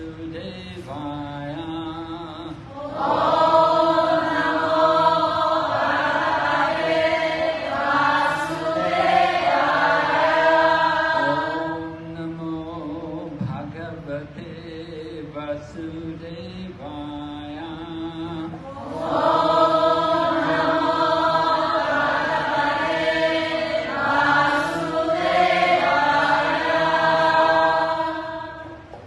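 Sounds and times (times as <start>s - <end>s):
man chanting into microphone: 0.0s - 2.8s, 11.1s - 18.8s.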